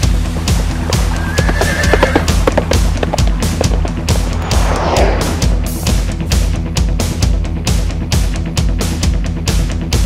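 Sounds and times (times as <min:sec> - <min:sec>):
rock music: 0:00.0 - 0:10.0
horse whinnying: 0:00.8 - 0:03.2.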